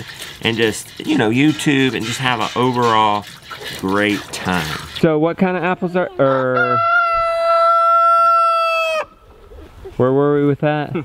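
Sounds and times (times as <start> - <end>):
rooster crowing: 6.2 - 9.2.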